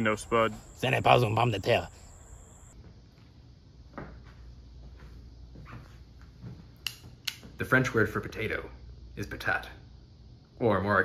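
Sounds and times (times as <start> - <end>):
sharp click: 6.8 - 7.4.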